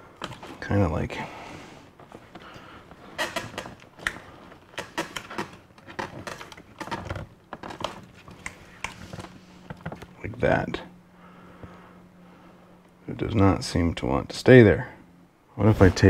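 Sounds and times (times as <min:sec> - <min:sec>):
plastic clicking and creaking: 0:02.0 - 0:10.2.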